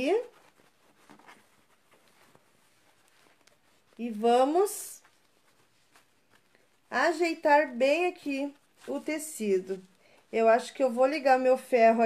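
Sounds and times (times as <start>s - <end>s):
person speaking: 0.0s - 0.6s, 3.5s - 5.4s, 6.0s - 12.0s
fabric rustling: 0.0s - 12.0s.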